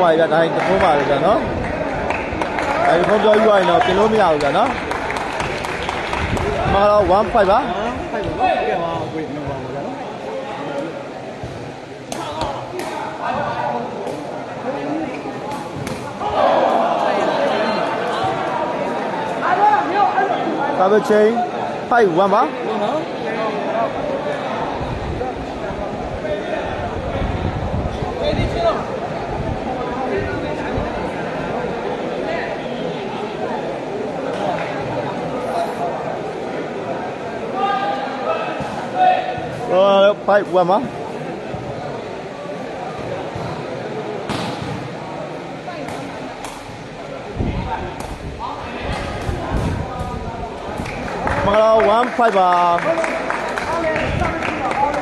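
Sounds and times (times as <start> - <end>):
crowd chatter in a large hall: 0.0 - 55.0
spectator hubbub: 0.0 - 55.0
ball struck with sharp smacks: 15.5 - 16.2, 44.3 - 44.9.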